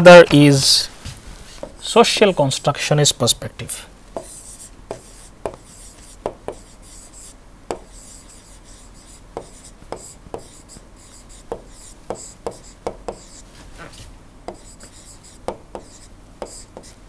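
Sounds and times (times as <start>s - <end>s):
stylus scratching: 4.2s - 17.0s
stylus tapping on tablet screen: 7.7s - 7.9s.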